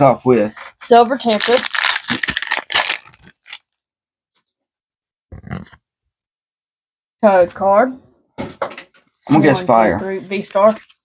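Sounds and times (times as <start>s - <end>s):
foil wrapper crinkling: 1.0s - 3.7s.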